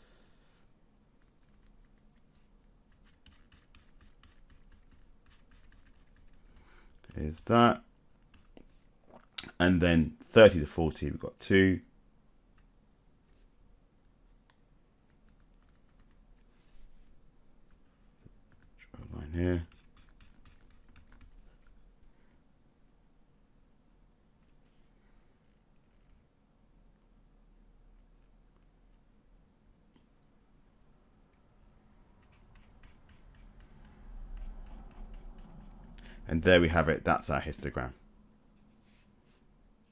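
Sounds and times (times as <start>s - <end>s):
stylus scratching on tablet screen: 1.2s - 6.6s, 8.2s - 8.9s, 15.1s - 17.8s, 19.4s - 21.8s, 32.2s - 36.0s.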